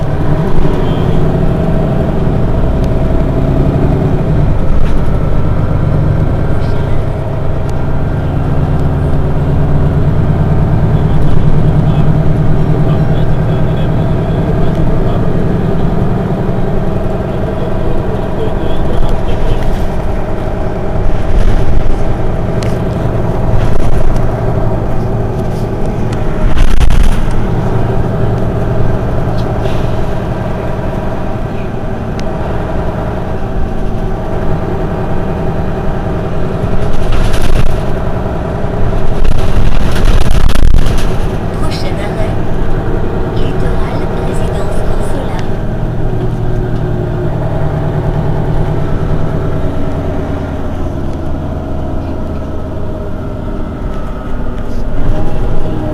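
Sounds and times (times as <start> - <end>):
bus engine idling: 0.0 - 55.9.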